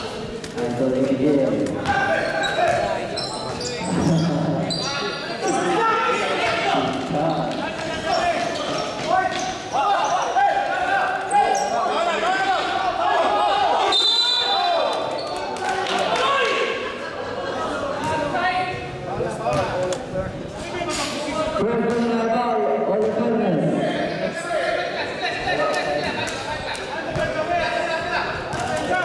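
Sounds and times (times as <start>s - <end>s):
people shouting: 9.7s - 14.9s.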